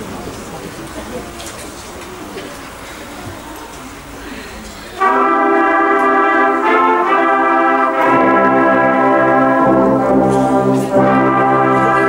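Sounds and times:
audience murmur and rustling: 0.0 - 12.0.

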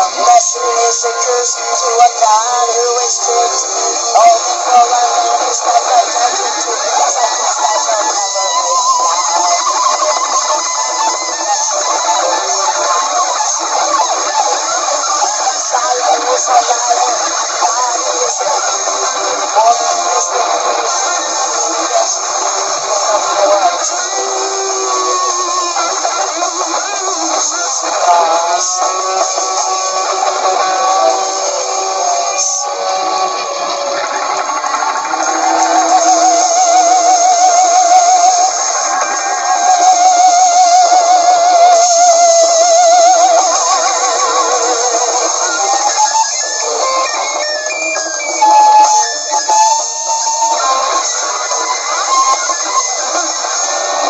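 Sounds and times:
drums: 0.0 - 54.0
electric guitars: 0.0 - 54.0
wobbling guitar tone: 0.0 - 54.0.

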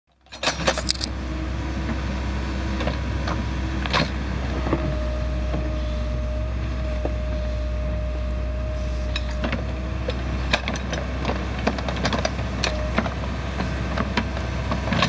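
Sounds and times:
diesel engine droning with whine: 0.1 - 15.0.

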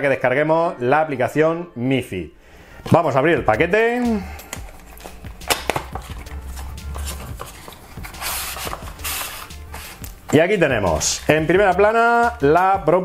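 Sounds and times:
card scraping against card: 4.5 - 10.4
cardboard clicks and taps: 5.0 - 7.8.

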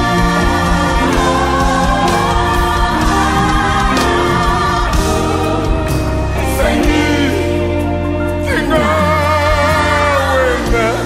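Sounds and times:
gospel choir singing: 0.0 - 11.0
keyboard and drums band: 0.0 - 11.0.

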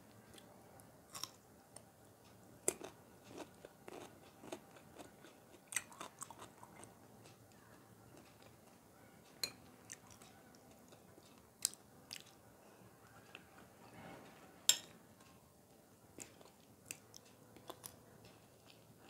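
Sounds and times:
soft chewing: 0.0 - 19.0.

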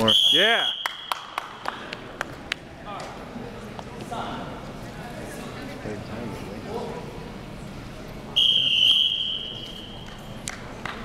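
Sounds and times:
long high whistle blast: 8.4 - 10.0.

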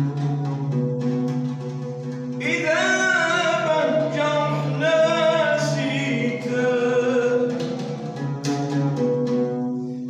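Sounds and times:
oud plucked notes: 0.0 - 10.0
person singing: 2.4 - 8.1.

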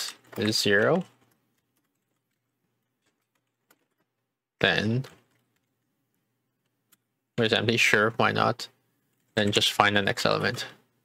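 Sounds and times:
keyboard typing: 0.0 - 7.1.

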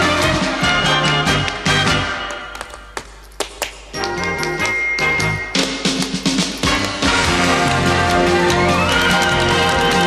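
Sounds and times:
band music: 0.0 - 2.4, 4.0 - 10.0
tap shoes tapping on stage: 0.0 - 10.0.

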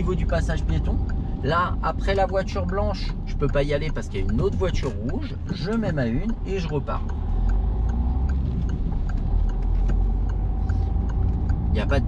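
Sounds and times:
light regular ticking: 0.0 - 12.0
car engine pulling away: 5.5 - 12.0.

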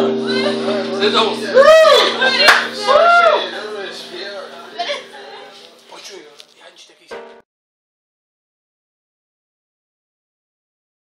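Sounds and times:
live band sustained chord: 0.0 - 5.4, 7.1 - 7.4
audience clapping: 2.4 - 2.9.

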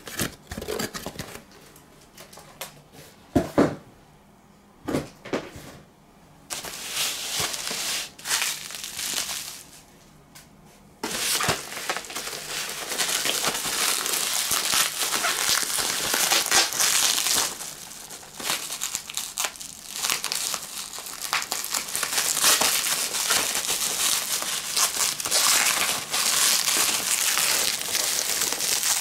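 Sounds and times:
bubble wrap crinkling: 6.5 - 9.8, 11.0 - 29.0.

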